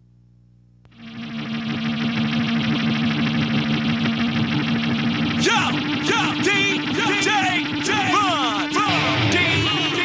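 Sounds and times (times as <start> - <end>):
faint low drone: 0.8 - 10.0
rock music with electric guitar: 0.9 - 10.0.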